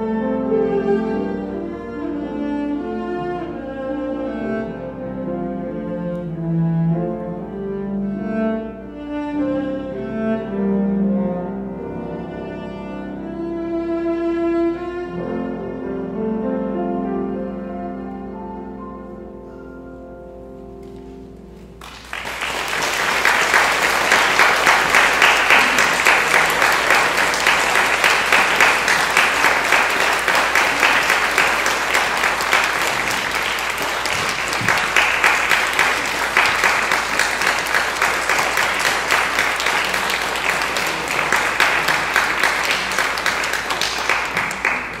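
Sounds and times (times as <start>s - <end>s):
crowd applauding: 21.8s - 45.0s.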